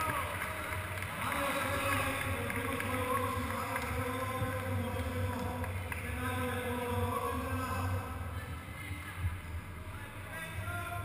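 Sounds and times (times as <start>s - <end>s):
indistinct voices talking: 0.0s - 11.0s
steady low hum: 0.0s - 11.0s.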